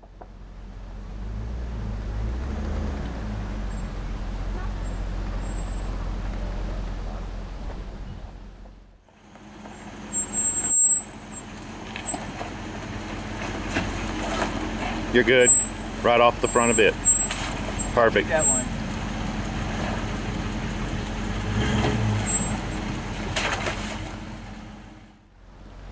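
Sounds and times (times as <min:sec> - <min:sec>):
trail noise: 0:00.0 - 0:25.9
truck engine running at low speed: 0:00.0 - 0:25.9.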